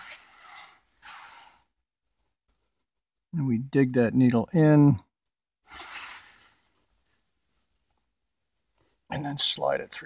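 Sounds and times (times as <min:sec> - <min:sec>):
scratchy rustle on carpet: 0:05.7 - 0:09.6.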